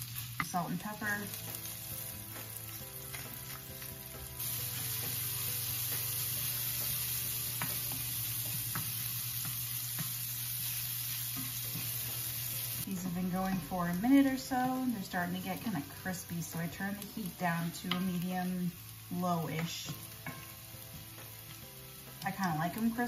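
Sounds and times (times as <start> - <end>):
shallots sizzling in oil: 0.0 - 23.0
wooden spoon scraping and tapping pan: 2.4 - 3.9, 6.8 - 12.2, 17.8 - 18.2, 19.5 - 20.6.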